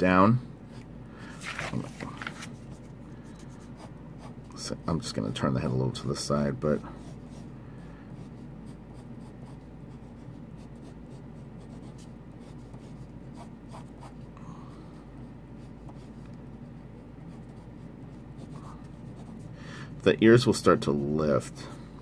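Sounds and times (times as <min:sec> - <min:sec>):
pencil scratching on paper: 0:02.8 - 0:06.0, 0:08.2 - 0:14.2, 0:17.0 - 0:19.6.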